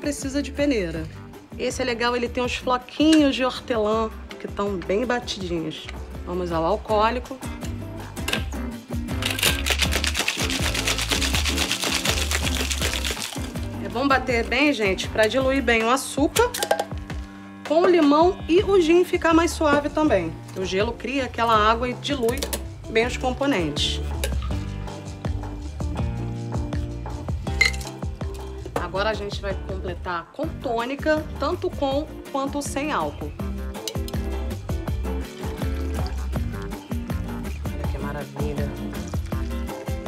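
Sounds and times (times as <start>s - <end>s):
background music: 0.0s - 40.0s
ice rattling in cocktail shaker: 9.2s - 13.8s, 27.6s - 28.0s.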